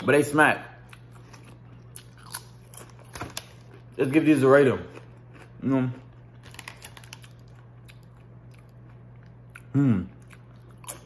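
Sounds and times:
chip crunching: 0:00.9 - 0:11.0.

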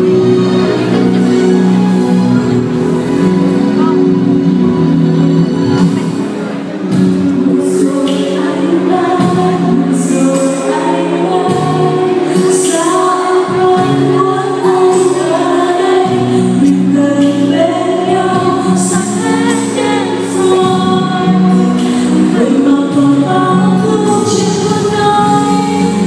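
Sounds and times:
backing music: 0:00.0 - 0:26.0
woman singing into microphone: 0:07.0 - 0:26.0.

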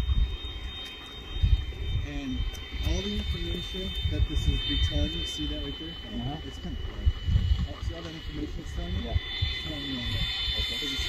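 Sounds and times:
electric fan high whine: 0:00.0 - 0:11.0
wind on microphone: 0:00.0 - 0:11.0.

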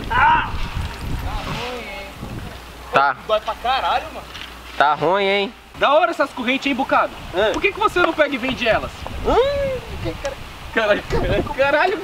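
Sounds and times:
wind rumbling on microphone: 0:00.0 - 0:02.9, 0:06.7 - 0:12.0.

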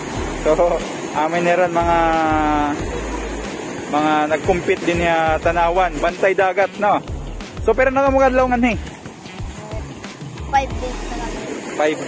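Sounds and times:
surf: 0:00.0 - 0:12.0.

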